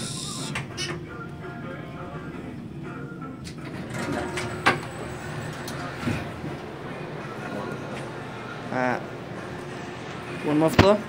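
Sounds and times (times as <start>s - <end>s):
sliding doors opening: 3.4s - 10.3s
faint voices murmuring: 5.2s - 11.0s.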